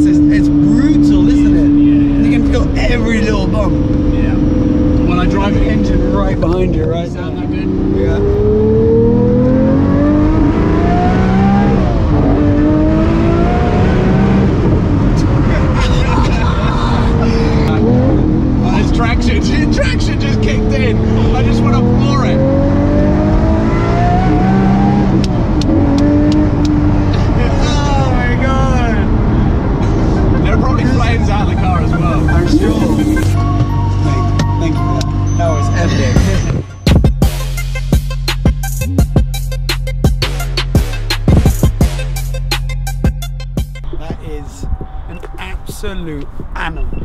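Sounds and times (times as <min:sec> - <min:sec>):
car engine revving hard: 0:00.0 - 0:39.0
people laughing: 0:15.8 - 0:17.9, 0:29.8 - 0:33.4.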